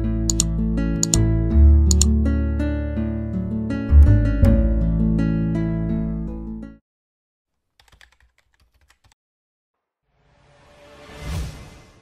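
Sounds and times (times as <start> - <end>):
keyboard key clicks: 0.3 - 1.2, 1.9 - 2.1, 7.8 - 9.2.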